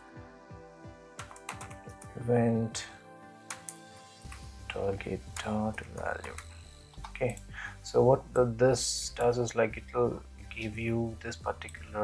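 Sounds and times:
soft background music: 0.0 - 12.0
computer keyboard typing: 1.2 - 2.1, 5.3 - 7.5.

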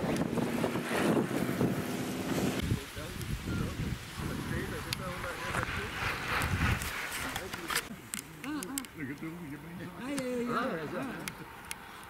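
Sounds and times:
wind rumbling on microphone: 0.0 - 7.9
people talking nearby: 2.6 - 11.7.

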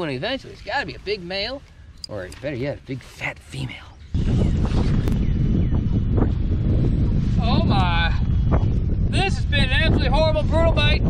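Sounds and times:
wind buffeting microphone: 3.7 - 11.0.

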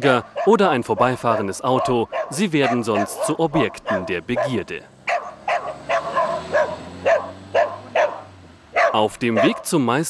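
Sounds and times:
dog barking and yipping: 0.1 - 9.8.

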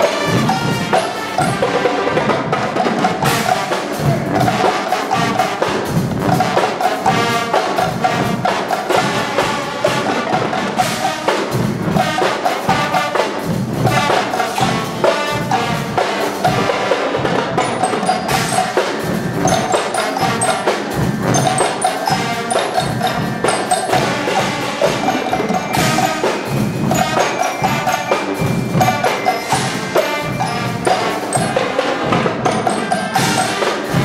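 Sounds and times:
brass band playing: 0.0 - 34.0
cymbals: 0.0 - 34.0
snare drums: 0.0 - 34.0
bass drums: 2.2 - 6.6.

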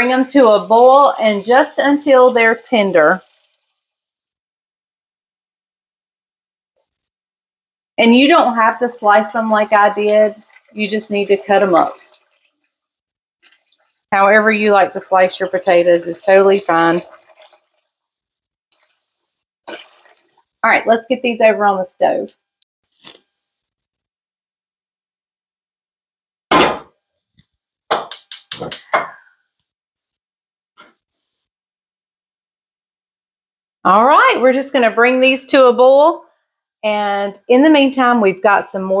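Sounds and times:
tap water running into pot: 0.0 - 3.8, 8.2 - 12.7, 13.4 - 18.0, 19.7 - 20.6.

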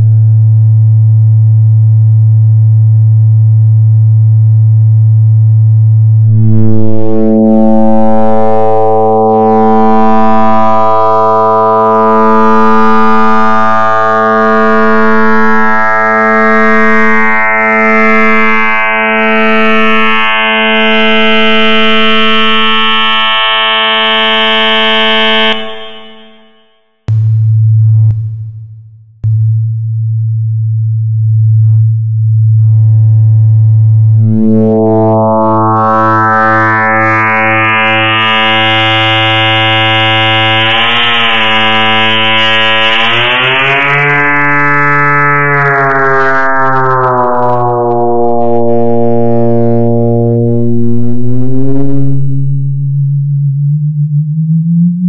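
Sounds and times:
electronic sine-wave drone: 0.0 - 55.0
loud low hum: 0.0 - 55.0.

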